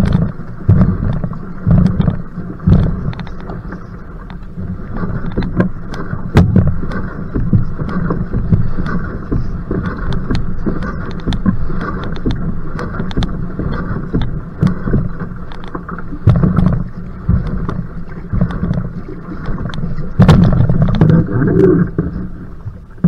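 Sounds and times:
paddle strokes splashing water: 0.0s - 23.0s
wind rumbling on microphone: 0.0s - 23.0s.

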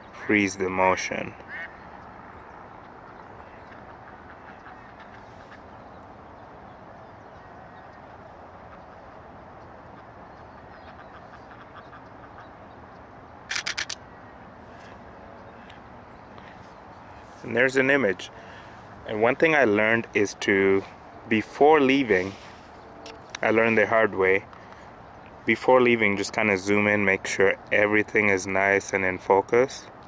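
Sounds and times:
outdoor background hiss: 0.0s - 30.0s
camera shutter burst: 13.5s - 14.0s.

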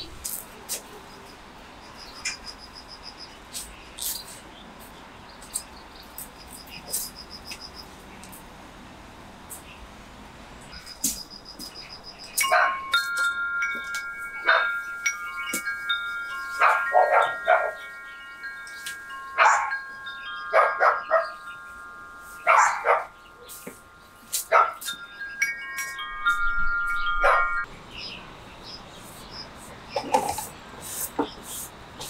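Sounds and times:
metal wind chime ringing: 10.9s - 27.7s.

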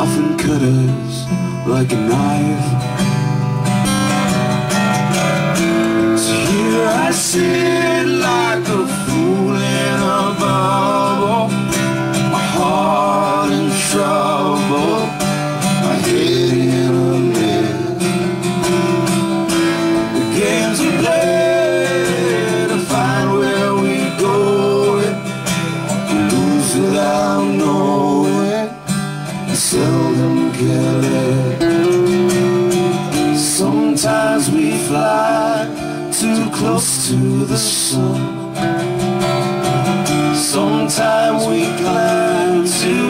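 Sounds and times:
acoustic guitars strummed and picked: 0.0s - 43.0s.

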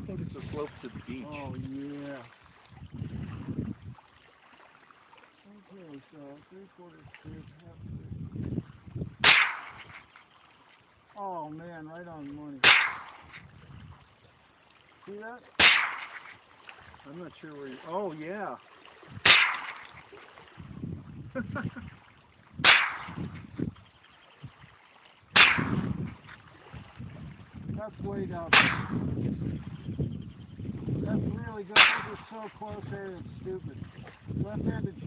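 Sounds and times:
rifle shot: 9.2s - 10.1s, 12.6s - 13.4s, 15.6s - 16.4s, 19.2s - 19.9s, 22.6s - 23.3s, 25.4s - 26.1s, 28.5s - 29.2s, 31.8s - 32.3s.

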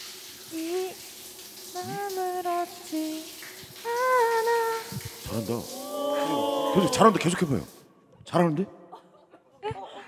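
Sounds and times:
woman humming a slow melody: 1.7s - 3.2s.

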